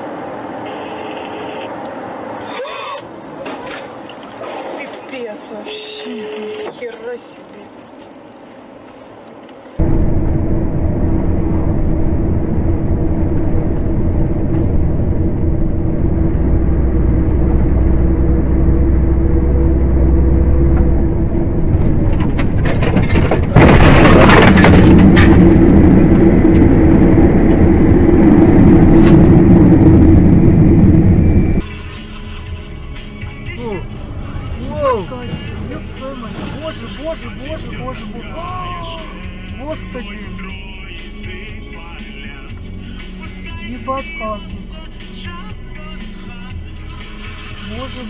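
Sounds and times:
vehicle engine and road noise: 0:00.0 - 0:48.0
sudden rush of noise: 0:09.8 - 0:31.6.

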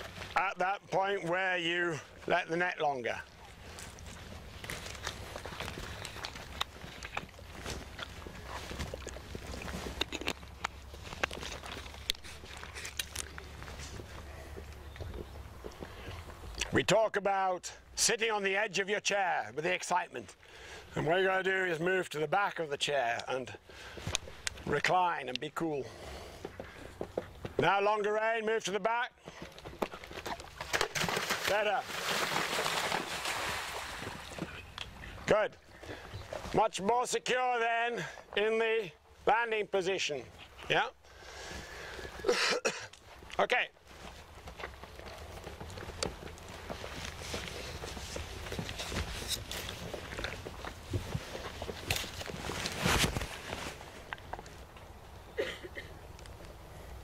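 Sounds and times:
horse hoofbeats: 0:29.1 - 0:35.2, 0:43.9 - 0:52.6.

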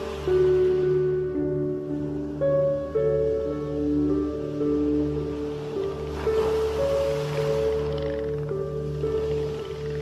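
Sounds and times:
ocean waves: 0:00.0 - 0:10.0
slow ambient music: 0:00.0 - 0:10.0.

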